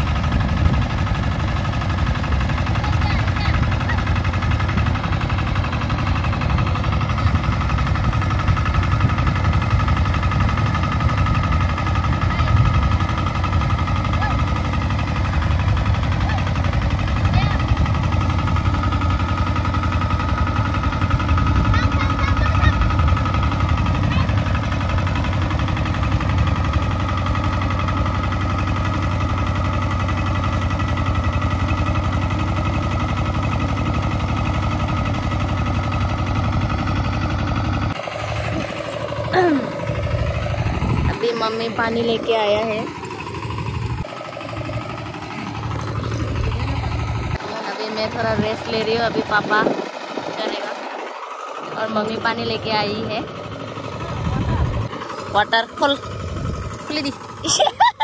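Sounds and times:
diesel tiller engine running: 0:00.0 - 0:58.0.

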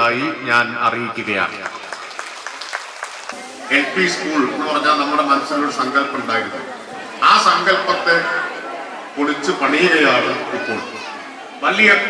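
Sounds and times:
children talking and chattering: 0:01.4 - 0:12.0.

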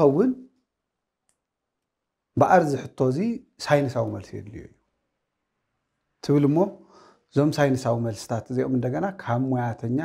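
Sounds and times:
man speaking: 0:00.0 - 0:00.5, 0:02.4 - 0:04.8, 0:06.2 - 0:10.0.

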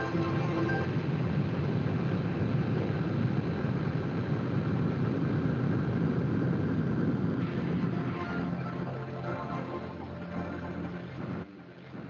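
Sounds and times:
low noisy rumble: 0:00.0 - 0:12.0.

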